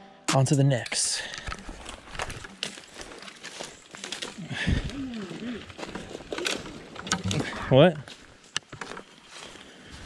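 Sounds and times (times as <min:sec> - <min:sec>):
footsteps crunching through leaves: 0:01.6 - 0:10.0.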